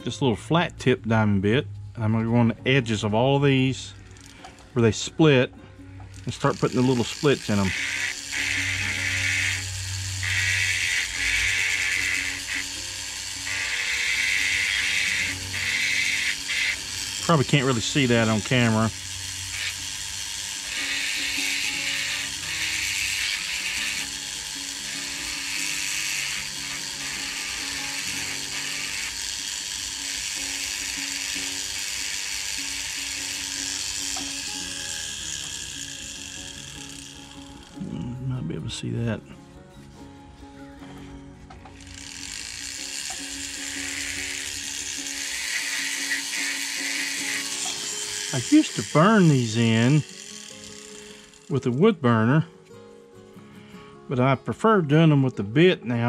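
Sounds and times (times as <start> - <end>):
background music: 0.0 - 56.0
rotary tool grinding wood: 2.9 - 38.1, 41.6 - 52.0.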